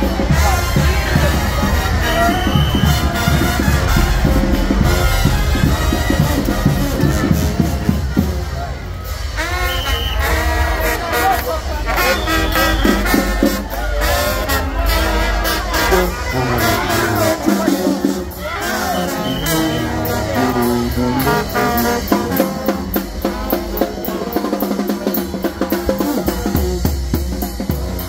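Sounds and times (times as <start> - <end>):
crowd voices: 0.0 - 28.0
drum and tuba beat: 0.0 - 28.0
trumpets and horns: 0.0 - 28.0.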